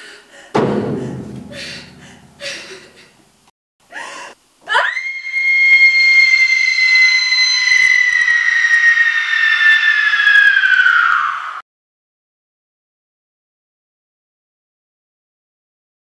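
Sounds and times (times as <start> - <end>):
sharp breath: 0.0 - 3.2
high-pitched human scream: 4.7 - 11.6.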